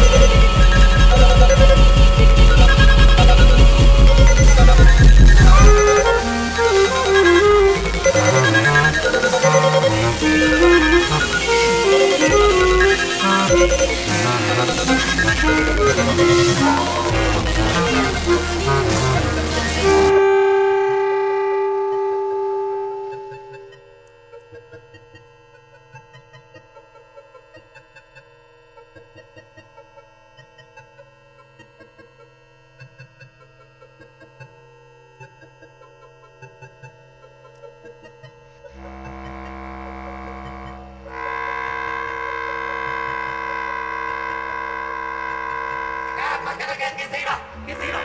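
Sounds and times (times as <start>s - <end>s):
dense electronic texture: 0.0s - 23.8s, 38.7s - 48.0s
low drone: 0.0s - 23.8s, 38.7s - 48.0s
bass clarinet long held note: 0.0s - 24.0s, 38.7s - 46.8s.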